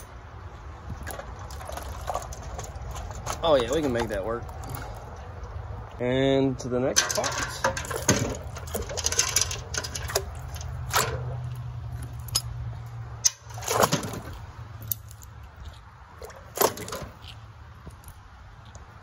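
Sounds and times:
water sloshing: 0:00.3 - 0:06.0, 0:07.0 - 0:17.8
metal traps and chains clanking: 0:06.9 - 0:15.3, 0:16.3 - 0:17.3
sharp metallic knocks: 0:07.0 - 0:11.4.

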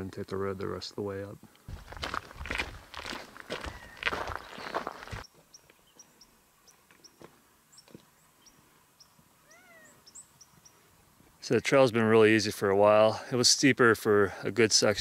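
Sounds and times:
footsteps crunching on gravel: 0:01.6 - 0:05.3
rising and falling bird call: 0:03.6 - 0:04.9, 0:09.4 - 0:10.8.

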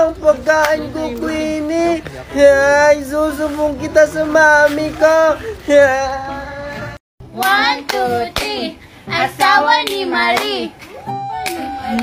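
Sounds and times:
sharp hand claps: 0:00.6 - 0:00.8, 0:07.4 - 0:08.6, 0:09.4 - 0:12.0.

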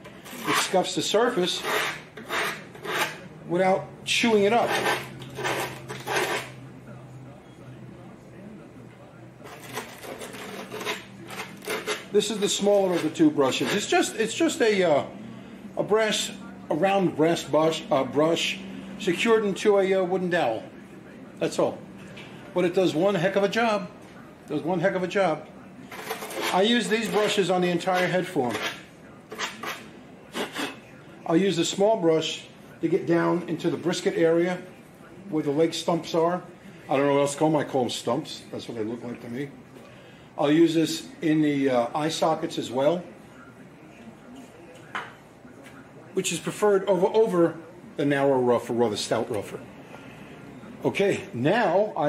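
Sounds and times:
wire brush scratching foam: 0:00.2 - 0:03.2, 0:04.4 - 0:06.6, 0:09.4 - 0:14.0, 0:25.9 - 0:30.8.

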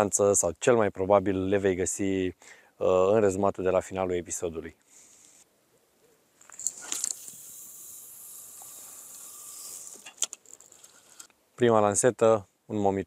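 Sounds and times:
fishing line hissing off reel: 0:06.4 - 0:11.3
fishing reel clicks: 0:06.5 - 0:11.4.

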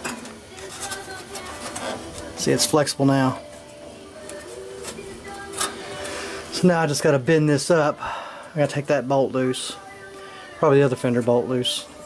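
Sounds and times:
sheet metal clicking and rubbing: 0:00.0 - 0:02.3.

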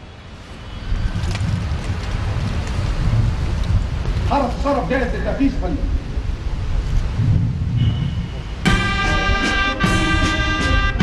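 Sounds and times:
wind on microphone: 0:00.0 - 0:11.0
brass band loud held chord: 0:08.6 - 0:11.0.

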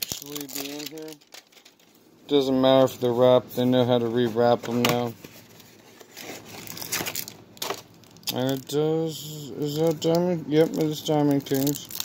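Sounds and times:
cardboard and plastic wrapping crinkling: 0:00.0 - 0:02.0, 0:04.0 - 0:08.8, 0:09.6 - 0:12.0.

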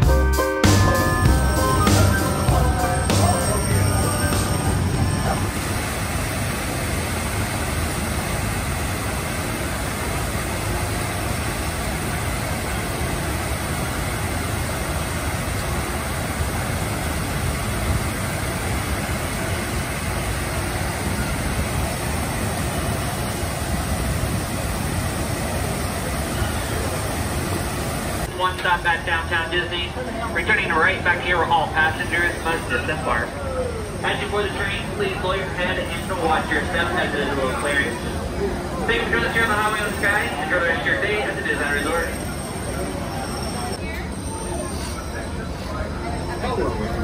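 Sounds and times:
steady rushing noise: 0:00.8 - 0:42.4.

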